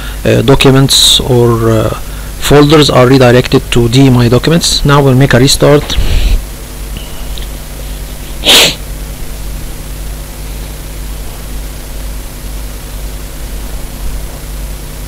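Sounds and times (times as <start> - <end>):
low hum and hiss: 0.0 - 15.0
person breathy burst: 6.0 - 6.4, 8.3 - 8.9.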